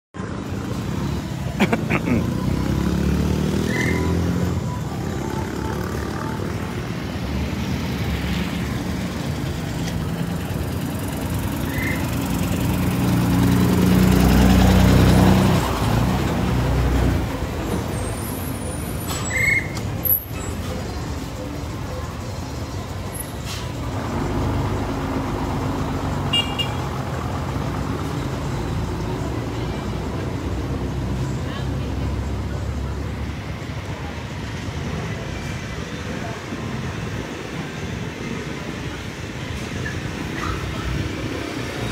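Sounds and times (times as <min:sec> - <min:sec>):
vehicle engines running: 0:00.2 - 0:41.9
vehicle passing close: 0:00.3 - 0:18.1.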